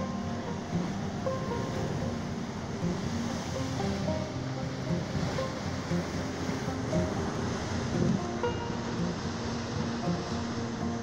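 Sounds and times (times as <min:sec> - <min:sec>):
music of held notes: 0:00.0 - 0:11.0
surf washing over rocks: 0:00.0 - 0:11.0.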